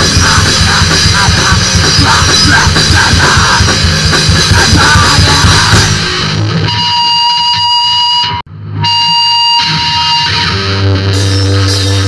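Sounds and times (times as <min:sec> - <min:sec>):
distorted electric guitar whining: 0:00.0 - 0:12.0.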